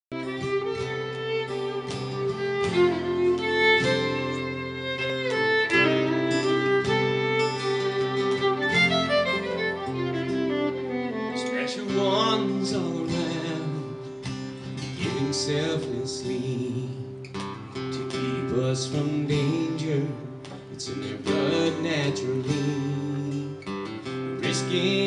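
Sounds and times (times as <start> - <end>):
acoustic guitar: 0.1 - 25.0
violin: 0.1 - 25.0.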